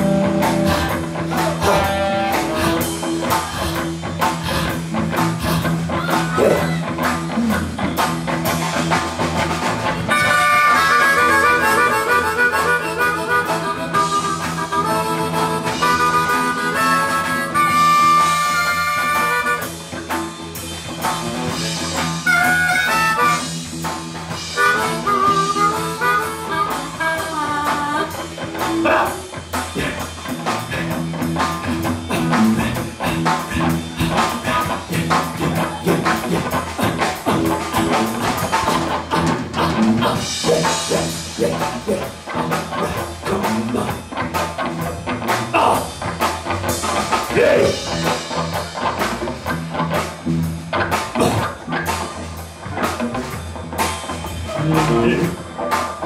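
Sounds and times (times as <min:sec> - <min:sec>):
amplified blues harmonica: 0:00.0 - 0:08.3, 0:09.8 - 0:44.1
drums: 0:00.0 - 0:56.0
electric guitar: 0:00.0 - 0:56.0.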